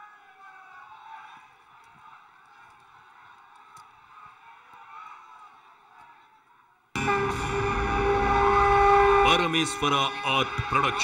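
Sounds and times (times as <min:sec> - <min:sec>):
audience whistling: 0:07.0 - 0:11.0.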